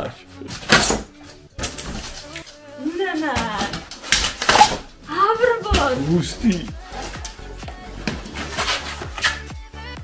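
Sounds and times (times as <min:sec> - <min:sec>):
polystyrene and cardboard rustling: 0:05.6 - 0:07.2, 0:07.9 - 0:09.4.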